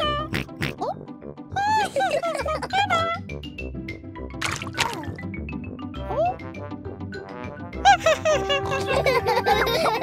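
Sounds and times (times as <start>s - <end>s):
light children's music: 0.0s - 10.0s.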